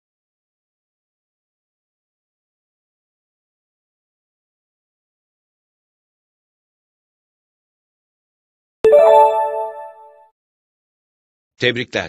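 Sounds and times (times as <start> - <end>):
bright electronic chime: 8.9 - 10.2.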